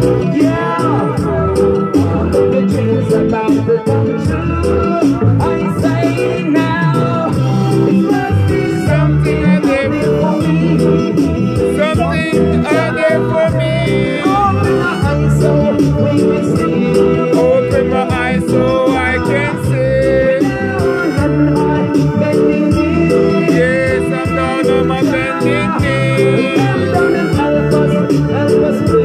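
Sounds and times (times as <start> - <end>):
man singing into a microphone: 0.0 - 29.0
reggae backing track: 0.0 - 29.0.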